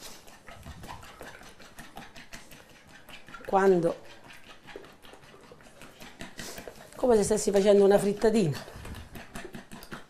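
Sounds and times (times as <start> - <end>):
fork beating eggs: 0.0 - 10.0.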